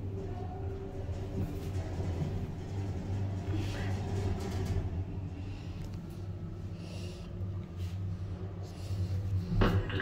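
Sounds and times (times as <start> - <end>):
lift hum and rumble: 0.0 - 10.0.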